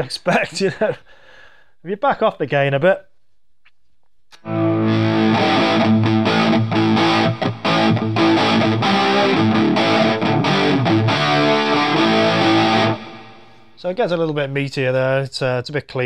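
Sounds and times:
overdriven electric guitar chords: 0:04.4 - 0:13.8.

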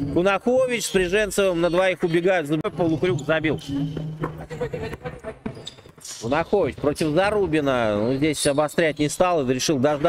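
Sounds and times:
basketball bouncing on court floor: 0:03.9 - 0:07.7.

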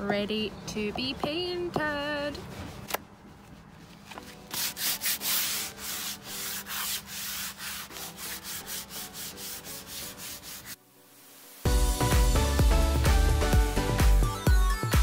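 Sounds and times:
music: 0:04.0 - 0:15.0
hand sanding strokes: 0:04.5 - 0:10.8.

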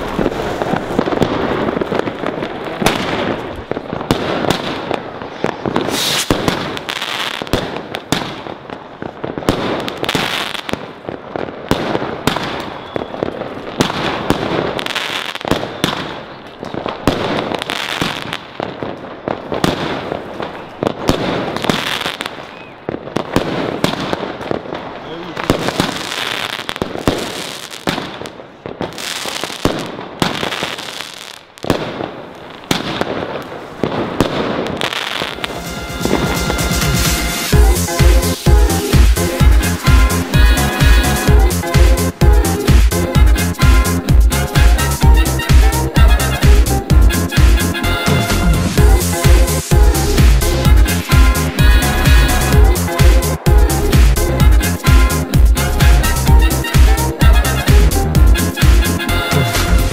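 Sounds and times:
firework launches and bursts: 0:00.0 - 0:24.7.

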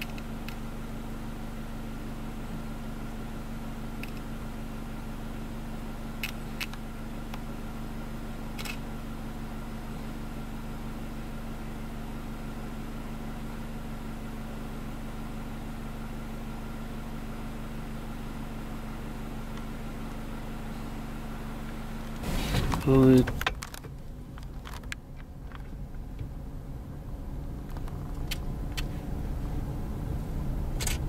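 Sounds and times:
car engine idling: 0:00.0 - 0:31.0.

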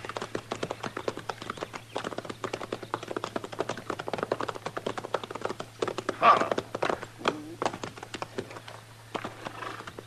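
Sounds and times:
horse hooves clopping on hard ground: 0:00.0 - 0:10.0.

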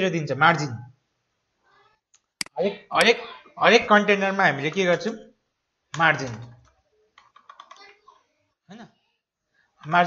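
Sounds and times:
keyboard typing: 0:05.9 - 0:08.1.

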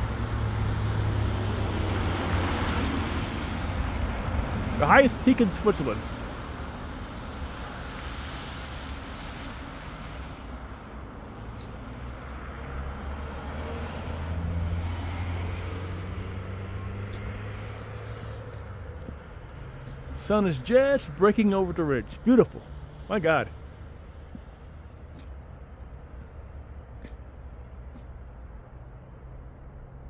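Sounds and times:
outdoor background noise: 0:00.0 - 0:30.0
vehicle engine hum: 0:00.0 - 0:30.0.

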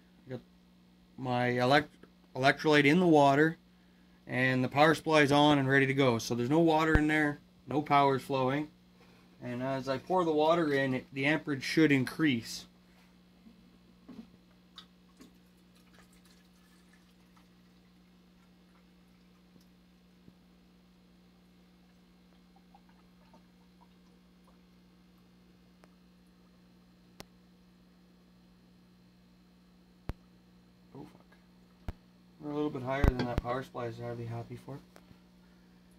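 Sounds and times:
faint steady hum: 0:00.0 - 0:35.9
water dripping and ticking: 0:14.7 - 0:19.8, 0:21.9 - 0:24.7.

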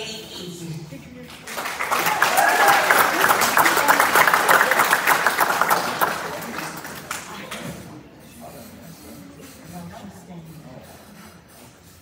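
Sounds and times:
audience applauding: 0:01.3 - 0:07.6.

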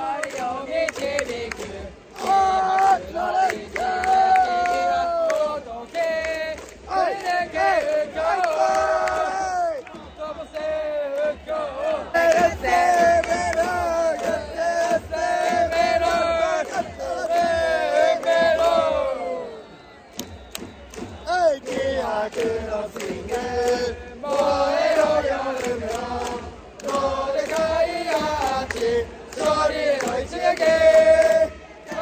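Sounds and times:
fans singing cheer song in unison: 0:00.0 - 0:32.0
stadium crowd chanting: 0:00.0 - 0:32.0.

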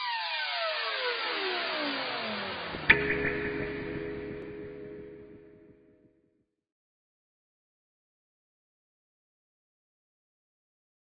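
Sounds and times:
sharp hit: 0:02.8 - 0:05.9
ringing chord: 0:02.8 - 0:06.1.

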